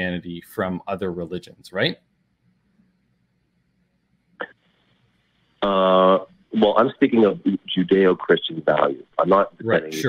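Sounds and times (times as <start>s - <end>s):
short vocal blip: 9.6s - 10.0s.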